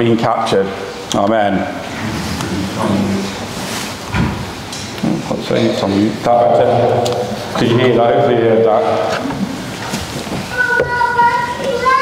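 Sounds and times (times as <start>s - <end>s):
scuffing and handling noise: 3.3s - 4.2s, 9.1s - 11.0s.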